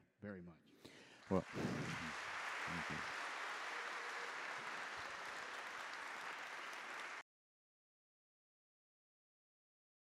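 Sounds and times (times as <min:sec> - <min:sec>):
audience applauding: 0:01.2 - 0:07.2.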